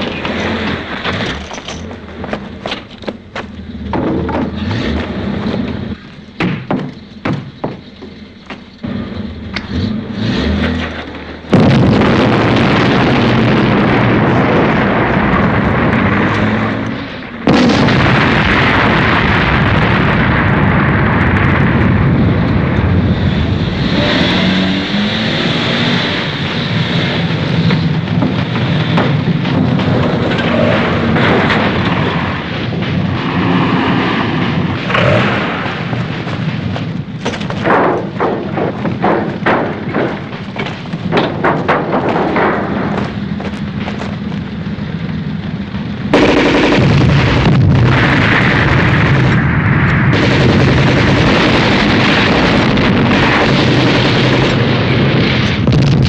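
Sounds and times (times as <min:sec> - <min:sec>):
heavy rumbling: 0:00.0 - 0:56.0
loud explosion blast: 0:11.4 - 0:24.8, 0:46.1 - 0:56.0.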